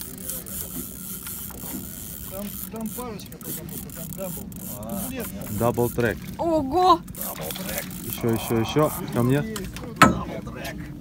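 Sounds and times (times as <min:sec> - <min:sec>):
fishing reel cranking: 0:00.0 - 0:09.9.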